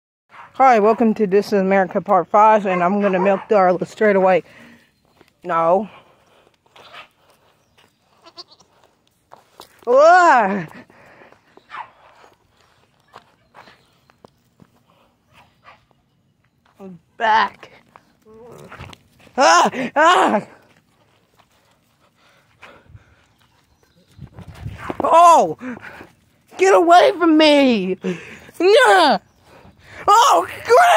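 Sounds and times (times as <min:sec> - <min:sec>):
footsteps on dirt and straw: 0:03.3 - 0:27.4
goat bleating: 0:08.1 - 0:08.9.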